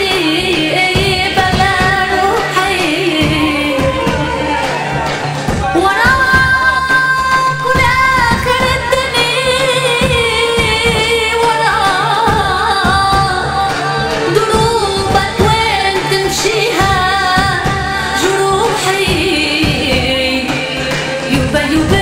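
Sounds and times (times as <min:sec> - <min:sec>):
steady drum beat: 0:00.0 - 0:22.0
woman singing into a microphone: 0:00.0 - 0:22.0
band accompaniment: 0:00.2 - 0:22.0.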